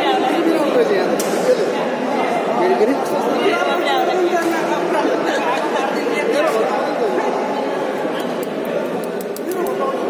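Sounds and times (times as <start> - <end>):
babble of overlapping voices: 0.0 - 10.0.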